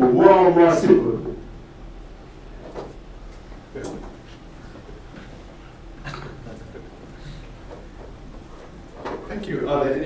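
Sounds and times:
steady room hum: 0.0 - 10.0.

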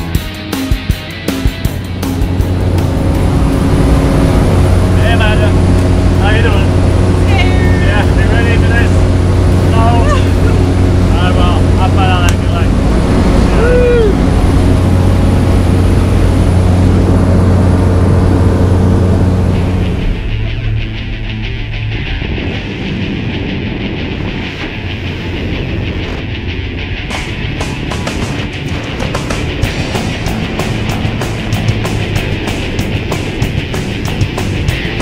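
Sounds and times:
aircraft engine and propeller droning: 0.0 - 35.0.

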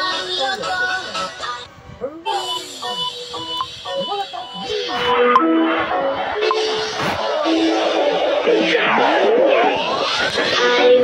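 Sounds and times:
song with singing: 0.0 - 11.0.

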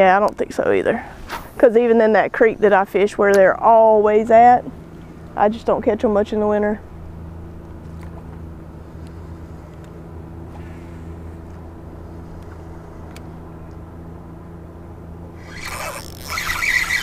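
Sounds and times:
boat motor humming: 2.0 - 17.0
clothing rubbing on microphone: 15.4 - 17.0
fishing reel clicking: 15.4 - 17.0.

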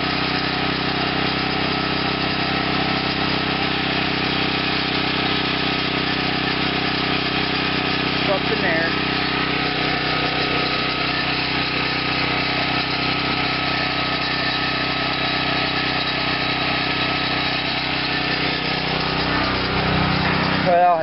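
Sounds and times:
small gasoline engine running: 0.0 - 21.0.

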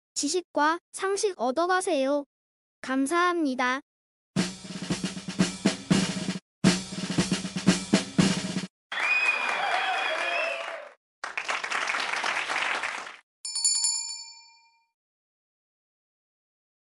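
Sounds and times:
drum roll: 4.4 - 8.7
applause: 8.9 - 13.2
bright bell ding: 13.5 - 14.9.

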